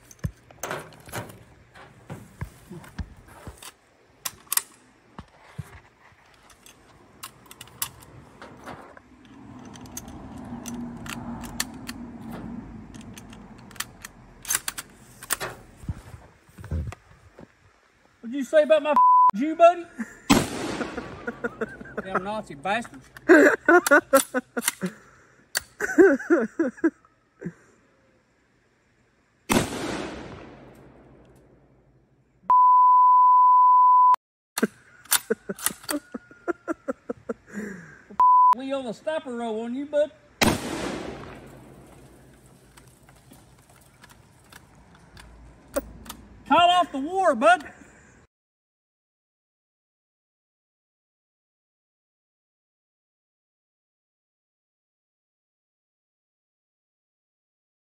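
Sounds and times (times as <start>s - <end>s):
rifle bolt clicks and rattles: 3.6s - 4.8s, 6.3s - 15.6s, 35.0s - 36.1s, 41.4s - 46.3s
high censor bleep: 19.0s - 19.4s, 32.5s - 34.2s, 38.2s - 38.6s
rifle shot: 20.3s - 21.4s, 29.5s - 31.6s, 40.4s - 42.3s
person speaking: 21.3s - 24.2s.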